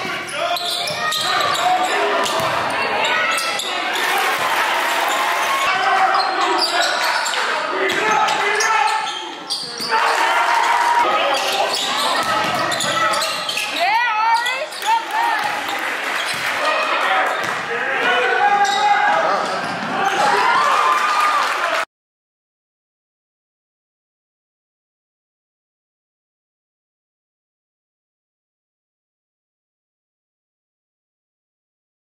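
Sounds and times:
voices of players and spectators: 0.0s - 21.9s.

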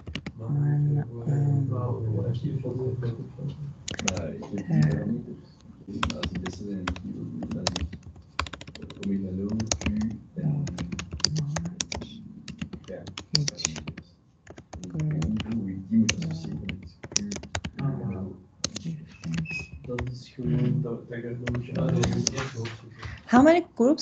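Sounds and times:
voices talking: 0.4s - 7.8s, 8.8s - 14.0s, 14.8s - 24.0s.

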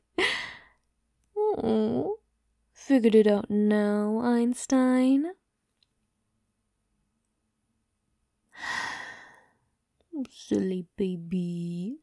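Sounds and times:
woman sighing: 0.2s - 0.7s, 8.6s - 9.4s.

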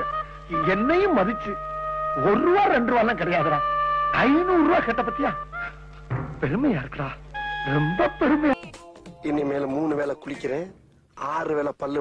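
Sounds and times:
steady high tone: 0.0s - 8.7s.

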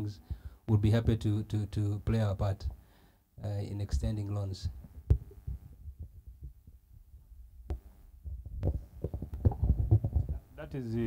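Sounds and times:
microphone handling thumps: 3.8s - 10.5s.

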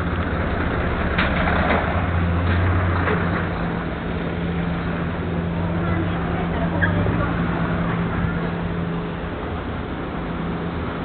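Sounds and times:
pedestrians talking: 0.0s - 11.0s
steady low street hum: 0.0s - 11.0s.

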